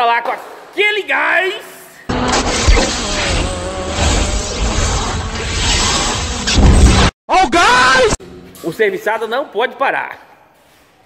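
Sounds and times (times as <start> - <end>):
dense rumbling roar: 2.3 - 5.5.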